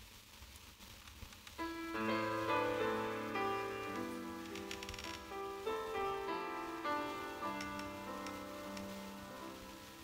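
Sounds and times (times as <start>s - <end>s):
faint light clicks: 7.5s - 9.0s.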